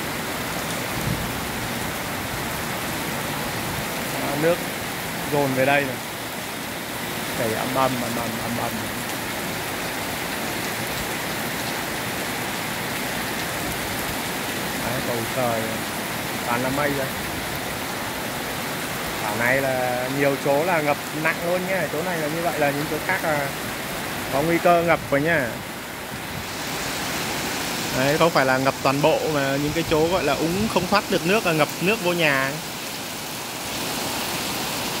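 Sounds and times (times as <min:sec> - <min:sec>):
heavy rain on road: 0:00.0 - 0:35.0.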